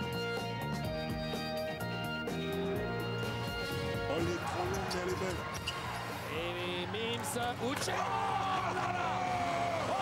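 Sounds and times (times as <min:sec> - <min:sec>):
shoe squeaks: 0:04.1 - 0:06.2.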